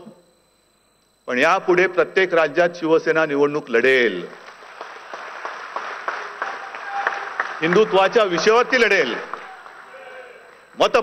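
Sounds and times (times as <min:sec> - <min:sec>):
audience clapping in a hall: 0:04.3 - 0:10.7.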